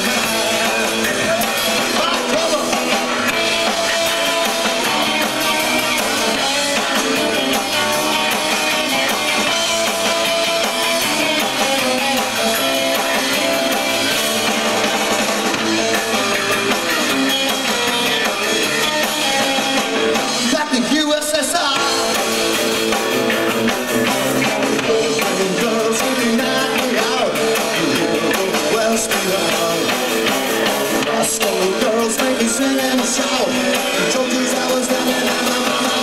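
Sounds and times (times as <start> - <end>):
bass guitar: 0.0 - 36.0
drum kit: 0.0 - 36.0
electric guitar: 0.0 - 36.0.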